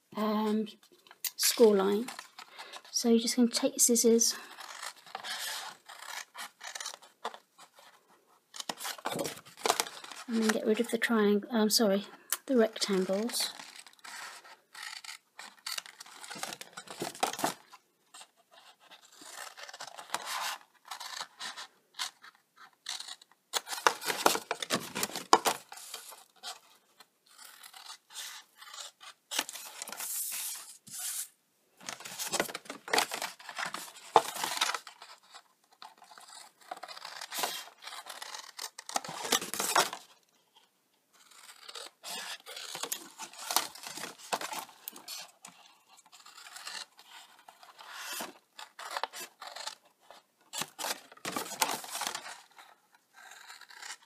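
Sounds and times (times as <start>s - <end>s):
card scraping and rubbing: 4.1s - 10.9s, 12.5s - 54.0s
scissors snipping cardstock: 32.0s - 40.0s.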